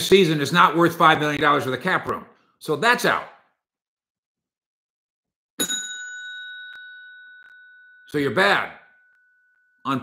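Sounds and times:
bell ding ringing: 5.6 - 10.0.

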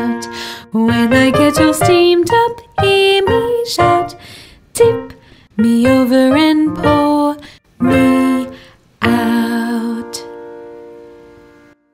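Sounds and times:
woman singing: 0.0 - 10.4.

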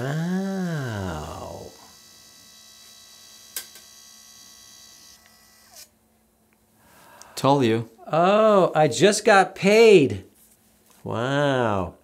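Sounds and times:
printer motor whirring: 1.7 - 5.9.

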